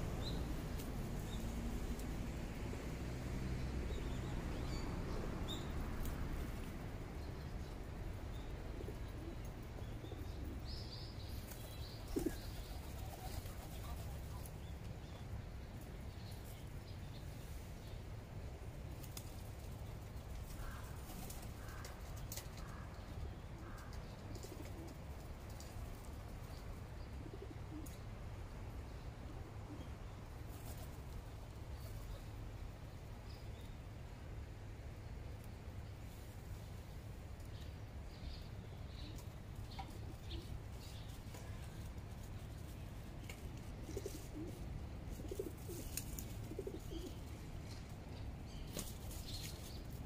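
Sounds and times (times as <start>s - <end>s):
low steady rumble: 0.0s - 12.9s
low outdoor rumble: 0.0s - 50.0s
pigeon cooing: 43.8s - 47.3s.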